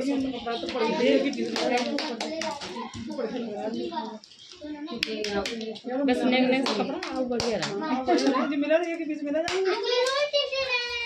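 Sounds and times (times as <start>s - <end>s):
high-pitched child's voice: 9.7s - 11.0s.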